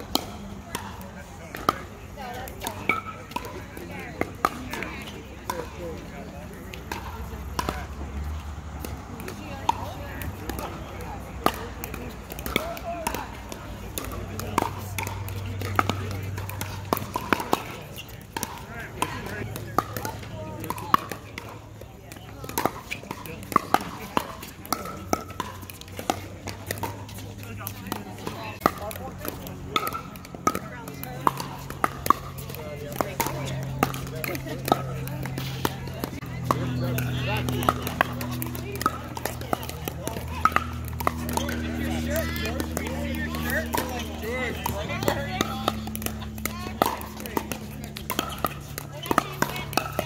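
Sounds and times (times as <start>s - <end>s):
indistinct chatter: 0.0s - 50.0s
paddles striking plastic balls: 0.0s - 50.0s.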